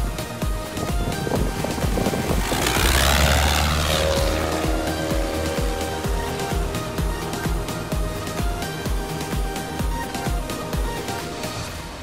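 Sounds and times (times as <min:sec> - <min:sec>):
electronic music with steady beat: 0:00.0 - 0:12.0
propeller plane passing overhead: 0:00.0 - 0:12.0.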